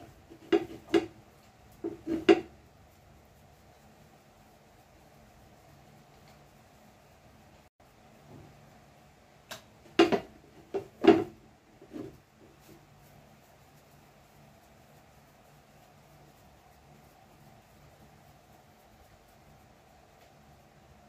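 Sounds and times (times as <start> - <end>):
faint steady hum: 0.0 - 21.0
dough knocking against plastic bowl: 0.3 - 1.2, 1.8 - 2.5, 9.5 - 11.4.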